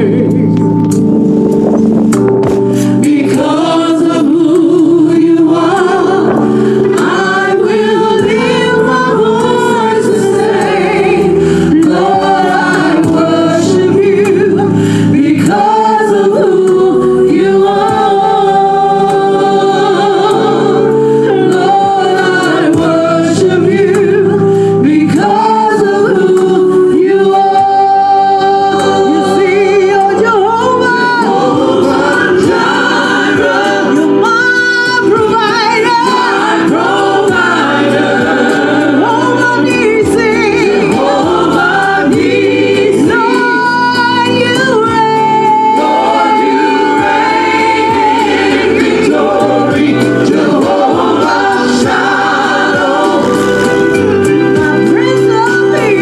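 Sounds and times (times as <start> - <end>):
group singing slow song in harmony: 0.0 - 56.0.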